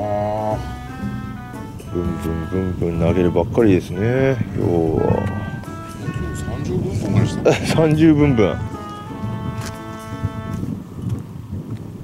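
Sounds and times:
background music held notes: 0.0 - 10.8
wind buffeting microphone: 0.0 - 12.0.

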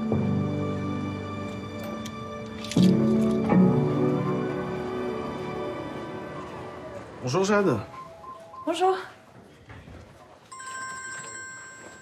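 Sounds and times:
mobile phone ringtone: 7.9 - 9.1, 10.5 - 12.0.

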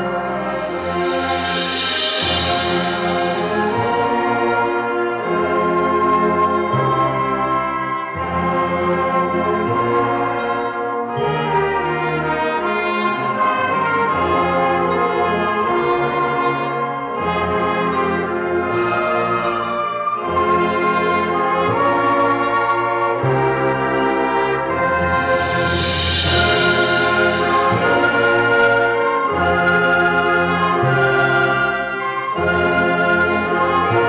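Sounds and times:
high shimmer: 0.1 - 5.6, 23.8 - 29.6
concert band playing held chords: 0.8 - 4.4, 24.7 - 29.2.

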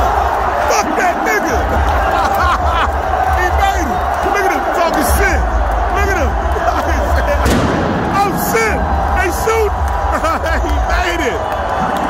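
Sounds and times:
stadium crowd shouting: 0.0 - 12.0.

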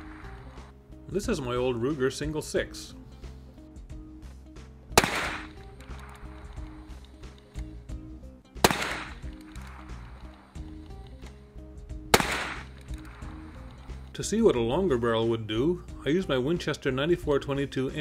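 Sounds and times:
background music: 0.0 - 18.0
revolver gunshots with echo: 5.0 - 6.8, 8.6 - 10.2, 12.1 - 13.6.

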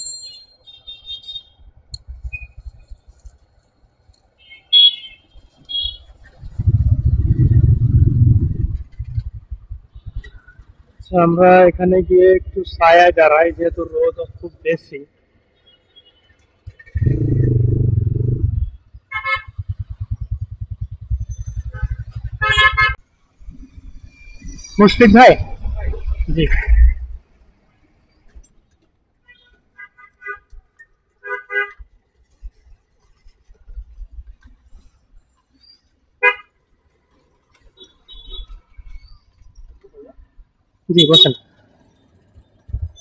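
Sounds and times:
vehicle horn beep: 0.3 - 1.6, 4.4 - 6.0, 41.0 - 41.4
motorcycle engine: 6.4 - 10.3, 16.7 - 23.0
vehicle horn honking: 41.0 - 41.4.

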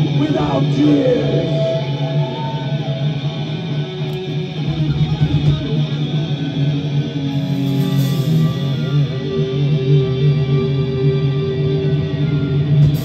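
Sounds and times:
heavy metal band playing: 0.0 - 13.0.

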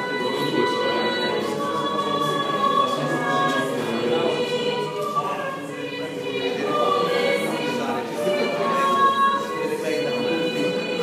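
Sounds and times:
choir holding long notes: 0.0 - 11.0.

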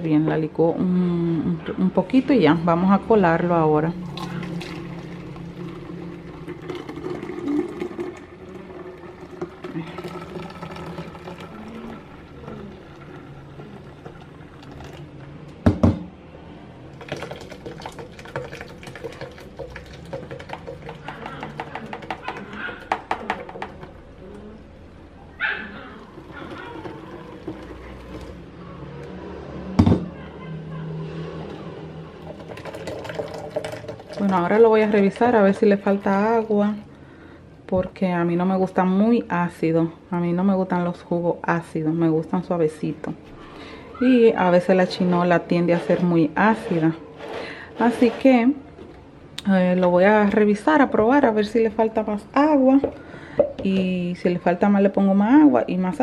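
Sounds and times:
juice pouring through strainer: 3.9 - 15.3, 16.9 - 23.9, 26.0 - 28.5, 32.2 - 36.6.

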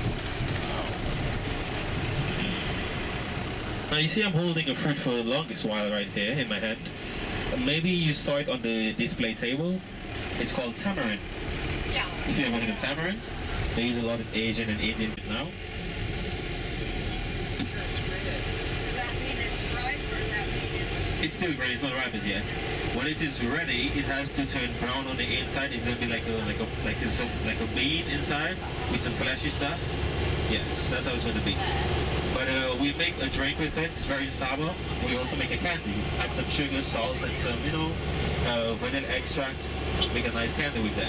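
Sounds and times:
bus engine rumble: 0.0 - 41.0
road noise: 0.0 - 41.0.

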